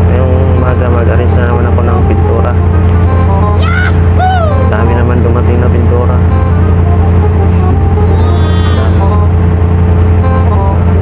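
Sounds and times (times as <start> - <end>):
ship engine drone: 0.0 - 11.0.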